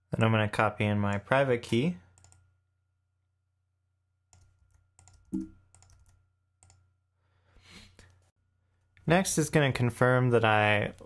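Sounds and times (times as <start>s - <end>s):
keyboard keystrokes: 4.4s - 6.8s.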